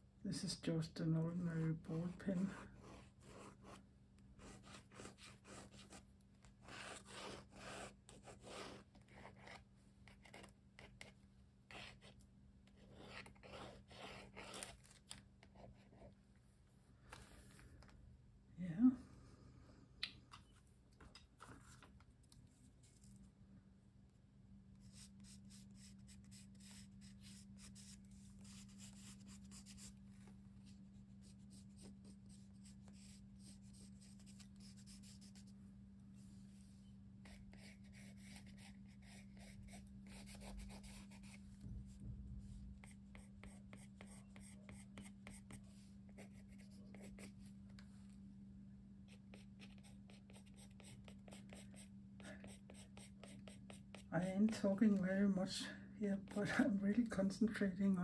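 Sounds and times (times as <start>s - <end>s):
pencil scratching on paper: 2.3s - 3.8s, 4.4s - 6.0s, 6.6s - 14.8s, 24.8s - 35.5s, 37.2s - 41.4s, 42.8s - 47.5s, 49.1s - 54.6s
steady low hum: 15.5s - 58.0s.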